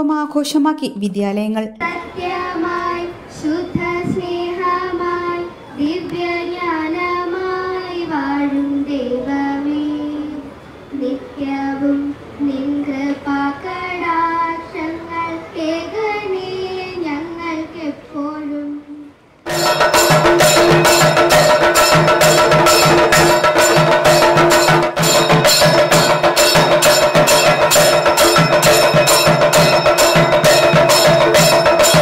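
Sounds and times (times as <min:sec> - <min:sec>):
girls singing into a microphone: 0:01.8 - 0:10.4.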